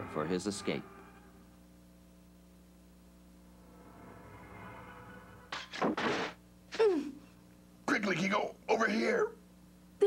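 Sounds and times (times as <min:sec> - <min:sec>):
faint background music: 0:00.0 - 0:07.1
cartoon impact thunk: 0:05.5 - 0:06.4.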